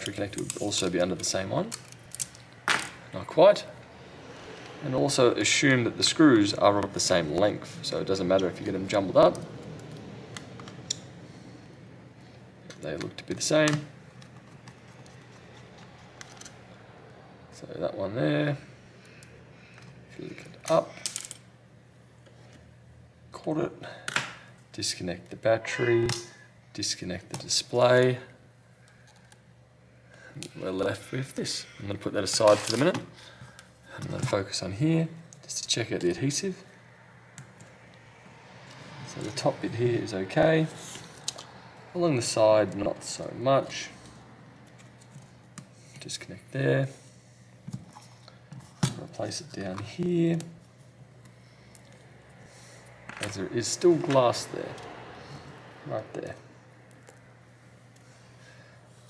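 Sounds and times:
faint steady hum: 0.0s - 59.0s.

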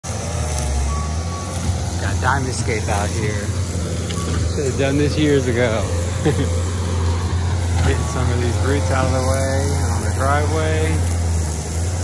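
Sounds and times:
diesel engine rumbling: 0.0s - 12.0s
high beep: 4.1s - 4.5s.

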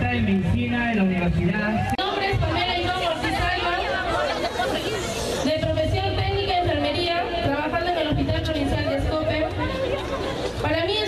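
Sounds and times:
crowd chatter: 0.0s - 11.0s
woman talking into microphone: 2.0s - 10.0s, 10.6s - 11.0s.

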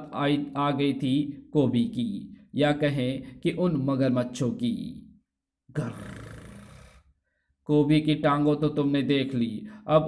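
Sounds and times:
man growling: 5.7s - 7.1s.

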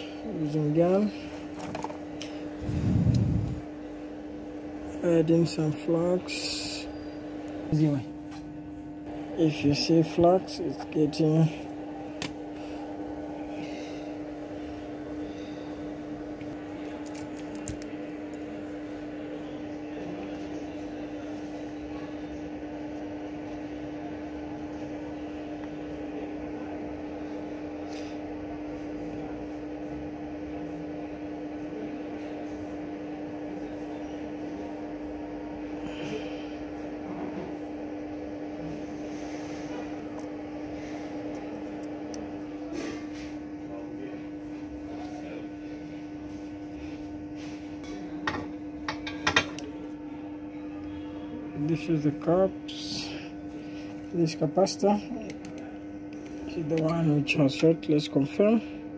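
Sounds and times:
steady electrical hum: 0.0s - 58.9s.

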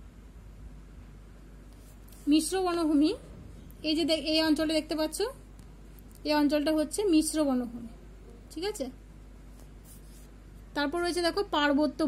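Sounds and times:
finger rustling on paper page: 1.7s - 2.4s, 9.5s - 10.6s.

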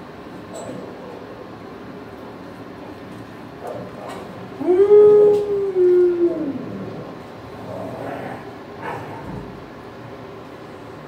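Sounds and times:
dog howling: 3.7s - 7.2s.

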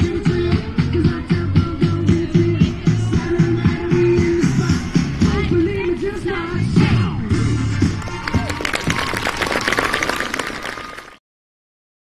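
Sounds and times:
faint performance music: 0.0s - 11.0s
audience applauding: 8.0s - 11.2s.

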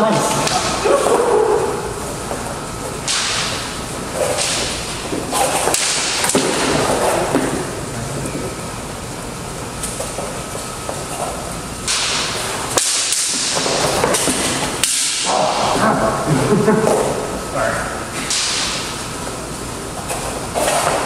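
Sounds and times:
person laughing: 15.7s - 17.3s.

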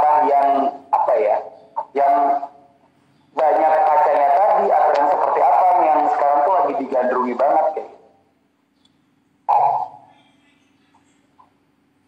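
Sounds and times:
man talking: 0.0s - 2.6s, 3.4s - 8.0s.

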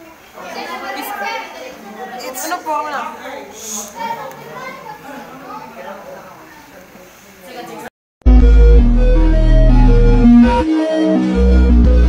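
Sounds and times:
boys talking: 0.0s - 7.9s
students chattering: 0.0s - 7.9s.

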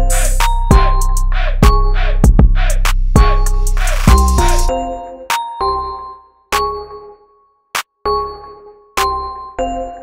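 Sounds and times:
hip-hop instrumental beat: 0.0s - 10.0s.

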